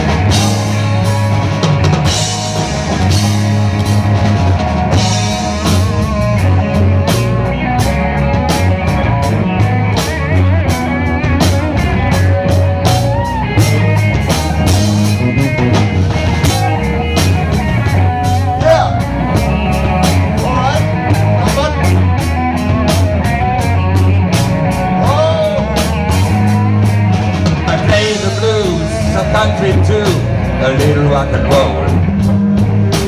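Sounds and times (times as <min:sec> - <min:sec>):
bass guitar: 0:00.0 - 0:33.0
drum kit: 0:00.0 - 0:33.0
electric guitars: 0:00.0 - 0:33.0.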